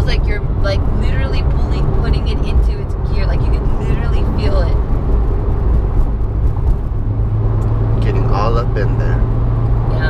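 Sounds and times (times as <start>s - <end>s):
car cabin engine and road rumble: 0.0s - 10.0s.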